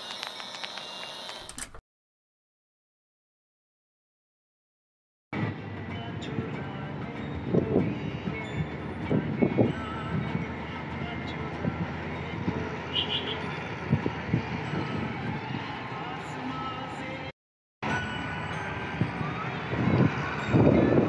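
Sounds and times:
vehicle road and engine noise: 0:05.4 - 0:21.0.

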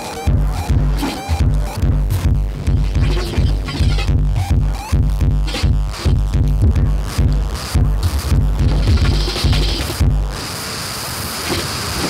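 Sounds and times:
bass-heavy electronic beat: 0:00.0 - 0:10.4
steady hiss: 0:09.2 - 0:12.0.

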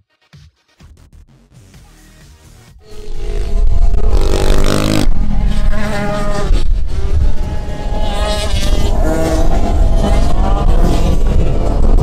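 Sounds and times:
dirt bike engines revving: 0:02.8 - 0:12.0.

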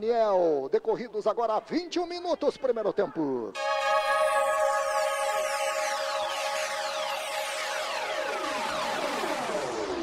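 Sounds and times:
held synth chord: 0:03.6 - 0:10.0
tones sliding down in pitch: 0:03.6 - 0:10.0.

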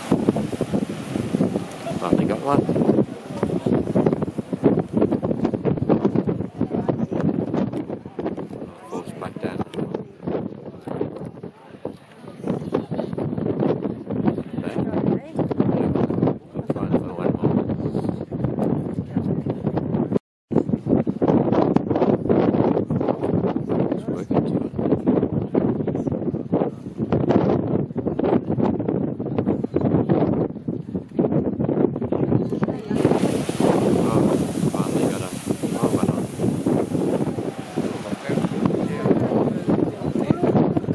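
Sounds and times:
water splashing and surging: 0:00.0 - 0:13.2, 0:32.5 - 0:40.9
wind buffeting microphone: 0:00.0 - 0:40.9
crowd talking faintly: 0:01.4 - 0:04.9, 0:06.0 - 0:17.3, 0:32.0 - 0:40.9.

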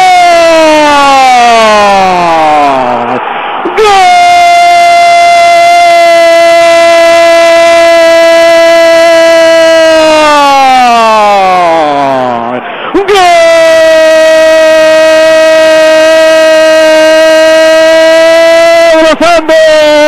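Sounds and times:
commentator's drawn-out goal cry: 0:00.0 - 0:20.0.

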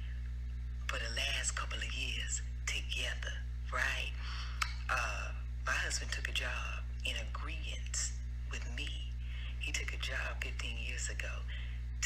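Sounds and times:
steady low hum: 0:00.0 - 0:12.0
woman speaking: 0:00.8 - 0:11.7.

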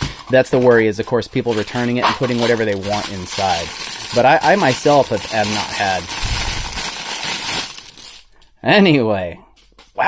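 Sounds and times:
paper wrapper crinkling: 0:00.0 - 0:08.5.

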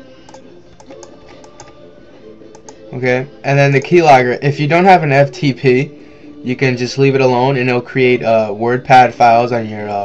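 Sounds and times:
quiet background music: 0:00.0 - 0:10.0
keyboard and mouse clicks: 0:00.2 - 0:01.8, 0:02.5 - 0:02.8.

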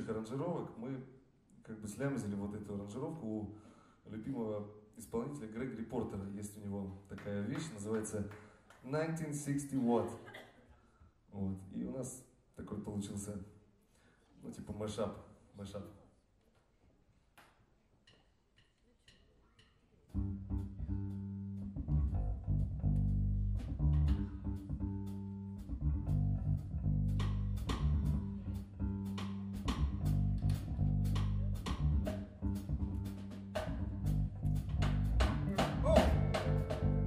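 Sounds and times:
electric bass: 0:20.2 - 0:37.0
drums and cymbals: 0:26.6 - 0:37.0
keyboard: 0:35.4 - 0:37.0.

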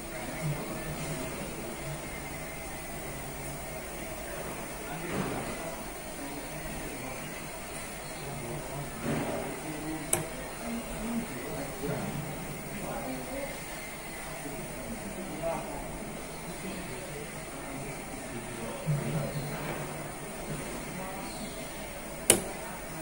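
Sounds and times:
indistinct background voices: 0:00.0 - 0:23.0
sharp click: 0:10.1 - 0:10.3, 0:22.2 - 0:22.6.

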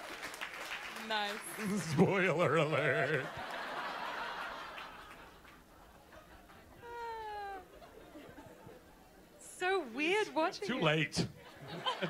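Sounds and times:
laughter: 0:01.6 - 0:09.0, 0:11.2 - 0:12.0.

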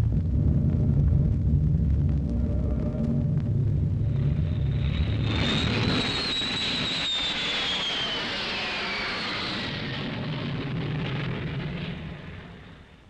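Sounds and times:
jet aircraft passing overhead: 0:02.4 - 0:13.0.

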